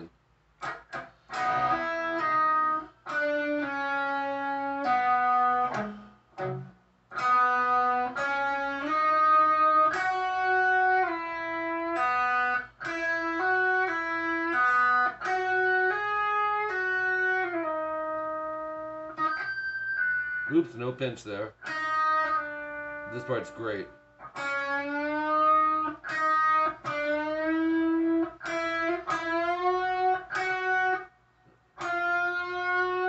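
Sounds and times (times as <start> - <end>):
electric guitar solo: 0.6 - 20.6, 21.5 - 31.1, 31.8 - 33.0.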